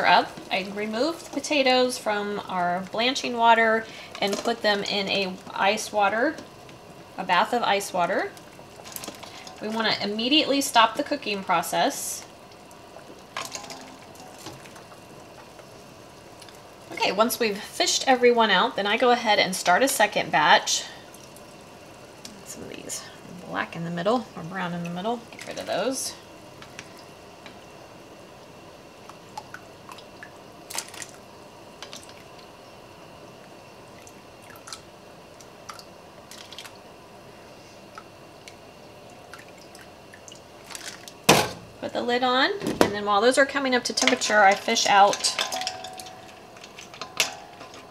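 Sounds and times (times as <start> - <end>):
steady low hiss: 0.0 - 47.9
water boiling in a pot: 0.0 - 47.9
water dripping: 28.4 - 31.2, 33.9 - 36.9, 37.9 - 41.3, 44.3 - 47.7.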